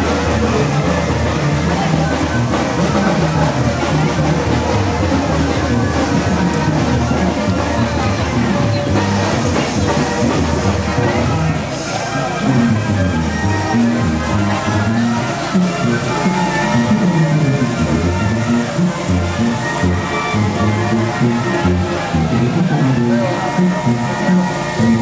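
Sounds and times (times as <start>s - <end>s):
music with bass line: 0.0s - 25.0s
voices singing along: 0.4s - 25.0s.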